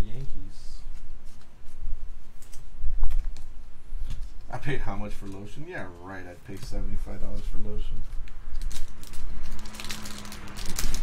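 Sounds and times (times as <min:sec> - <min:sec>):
plastic sleeve clicks and crinkles: 0:08.2 - 0:11.0.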